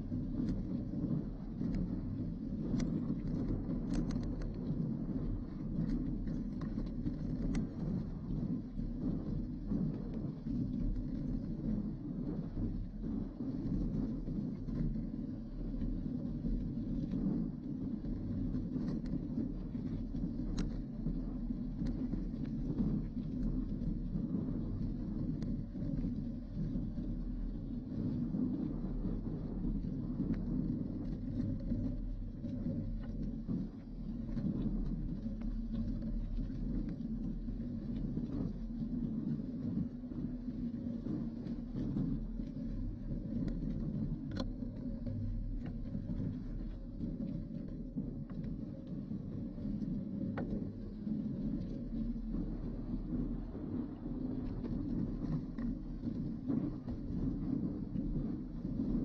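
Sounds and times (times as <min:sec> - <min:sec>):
small clicks and rattles: 0:01.3 - 0:08.3.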